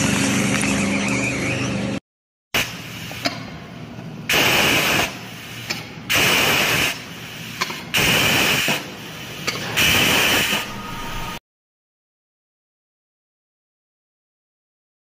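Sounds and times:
compressed air hissing: 4.3s - 10.7s.

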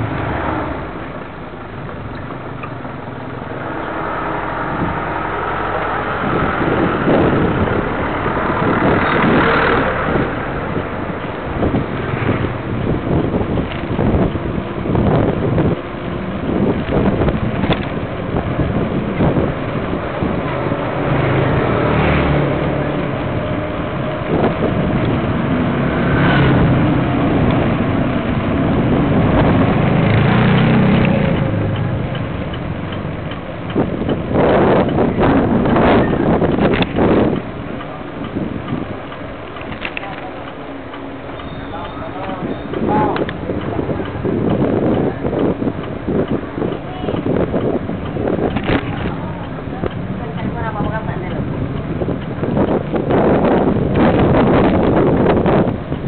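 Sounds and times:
bicycle riding rush: 0.0s - 56.0s.

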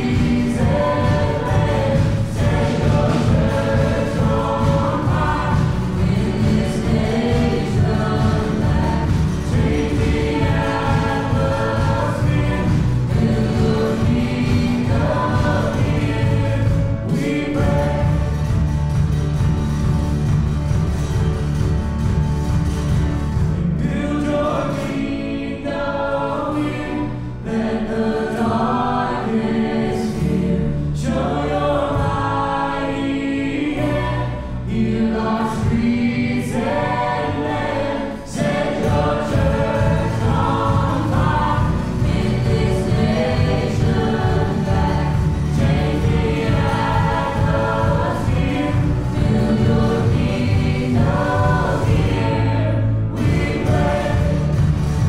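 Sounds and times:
man and woman singing together: 0.0s - 18.7s, 23.7s - 54.8s
drum beat: 0.0s - 23.6s, 38.4s - 55.0s
acoustic guitar: 0.0s - 55.0s
bass guitar: 0.0s - 55.0s
piano: 0.0s - 55.0s.

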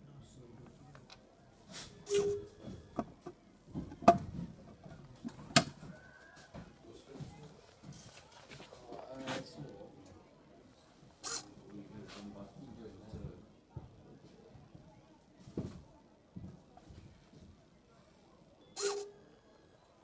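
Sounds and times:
wooden clicks and knocks: 5.2s - 6.0s
servo whir: 18.8s - 19.1s.

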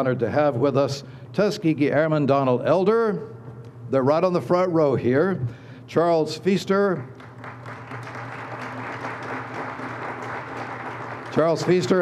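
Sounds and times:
audience applauding: 7.0s - 12.0s.

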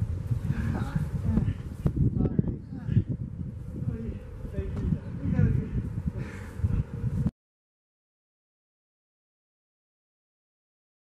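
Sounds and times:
wind buffeting microphone: 0.0s - 7.3s.

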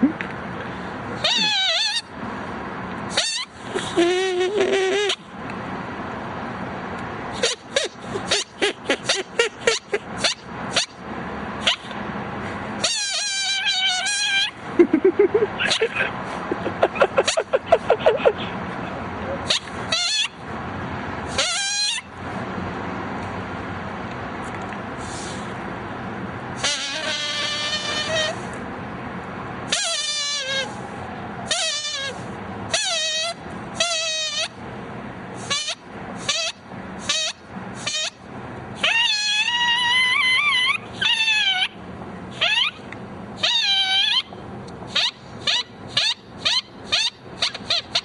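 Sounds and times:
drinking straw squealing: 1.2s - 2.1s, 3.1s - 5.2s, 7.4s - 11.0s, 12.8s - 14.6s, 19.4s - 20.4s, 21.3s - 22.1s, 26.6s - 28.5s, 29.7s - 30.8s, 31.5s - 34.6s, 35.4s - 38.2s, 38.8s - 44.3s, 44.9s - 48.0s.

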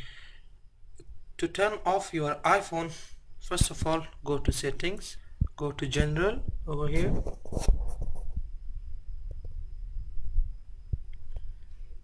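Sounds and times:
thin steady high whine: 0.0s - 12.0s
microphone handling rumble and thumps: 3.6s - 12.0s.

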